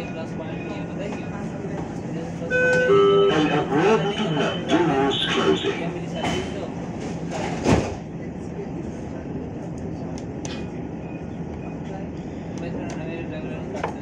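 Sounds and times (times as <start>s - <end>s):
tram pulling away: 0.0s - 7.3s
tram interior hum: 0.0s - 14.0s.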